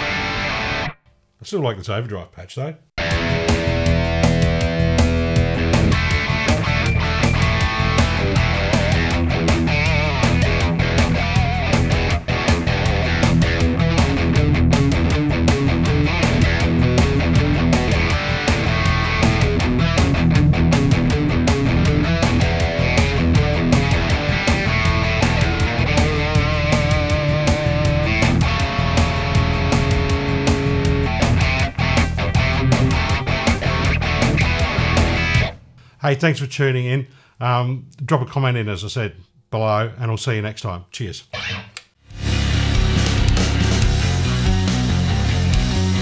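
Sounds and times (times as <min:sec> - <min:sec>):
overdriven electric guitar: 0:00.0 - 0:01.0, 0:03.0 - 0:35.9, 0:41.3 - 0:46.0.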